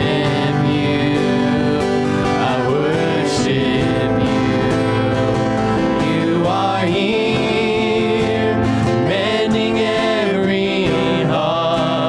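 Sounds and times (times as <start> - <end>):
guitars and keyboard: 0.0 - 12.0.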